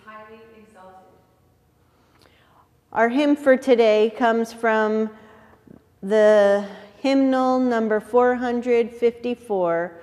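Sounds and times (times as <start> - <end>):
woman speaking: 0.0 - 1.3, 3.0 - 5.2, 6.0 - 10.0.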